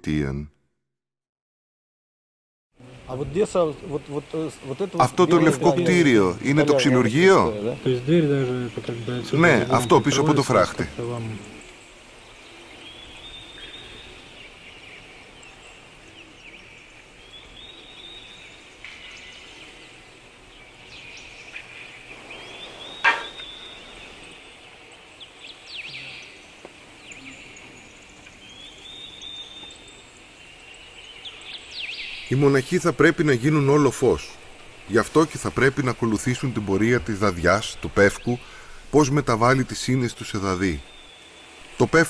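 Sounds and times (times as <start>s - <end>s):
high-pitched bird call: 22.9s - 23.8s.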